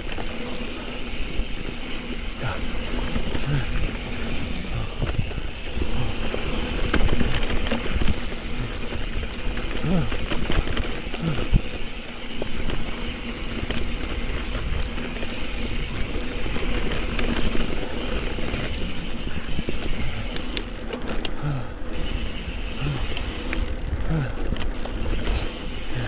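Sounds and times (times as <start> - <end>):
bike rattles and clicks: 0.0 - 26.0
wind rushing over microphone: 3.3 - 8.8.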